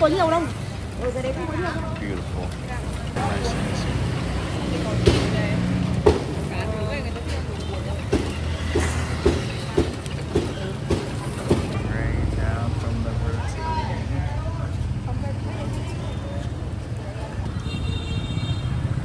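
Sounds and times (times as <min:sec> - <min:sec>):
street traffic rumble: 0:00.0 - 0:19.0.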